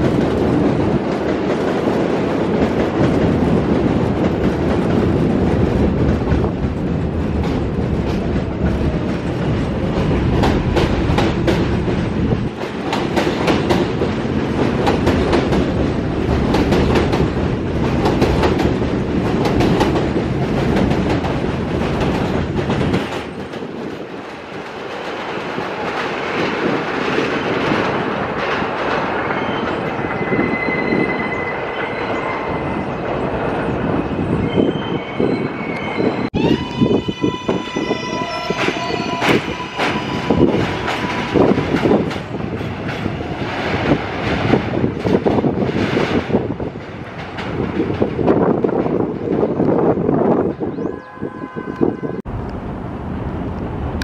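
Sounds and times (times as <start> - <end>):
subway cars rattling and clacking: 0.0 - 54.0
train steady whine: 29.0 - 45.6
train high steady tone: 34.4 - 42.0, 50.6 - 54.0.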